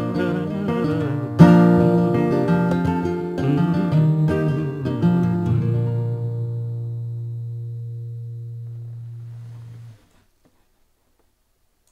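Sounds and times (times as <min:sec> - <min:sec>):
classical guitar chord ringing: 0:00.0 - 0:10.1
faint clicks: 0:10.4 - 0:11.9.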